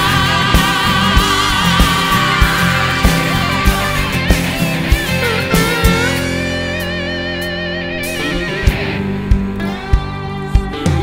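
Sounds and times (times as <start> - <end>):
drums playing a steady beat: 0.0 - 7.0, 8.0 - 11.0
electric guitar lead with vibrato: 0.0 - 11.0.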